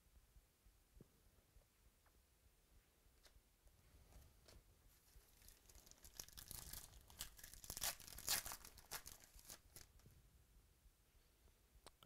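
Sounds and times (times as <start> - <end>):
crackling rips and crinkles: 4.4 - 10.0
foil wrapper tearing: 5.3 - 10.0.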